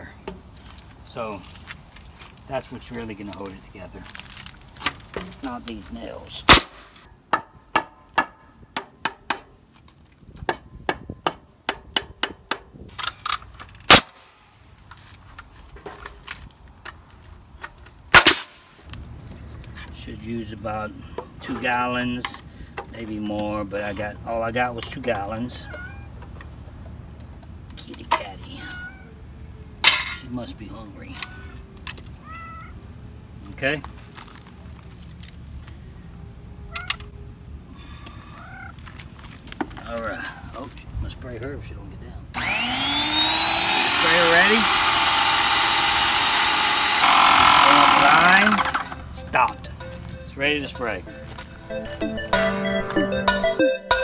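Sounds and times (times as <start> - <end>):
pneumatic nailer bangs: 6.5 - 6.9, 13.9 - 14.2, 18.1 - 18.6, 42.4 - 49.0
cat meowing: 25.6 - 26.2, 28.6 - 29.2, 32.2 - 32.8, 38.3 - 38.8.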